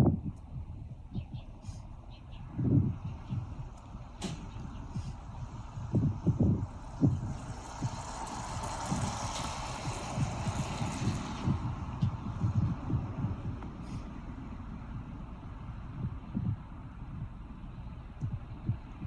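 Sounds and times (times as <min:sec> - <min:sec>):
wind buffeting microphone: 0:00.0 - 0:19.0
rushing noise: 0:02.5 - 0:17.6.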